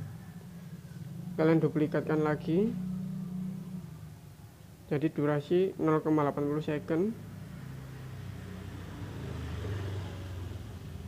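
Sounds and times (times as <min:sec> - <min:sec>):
low engine-like hum: 0:00.0 - 0:05.0.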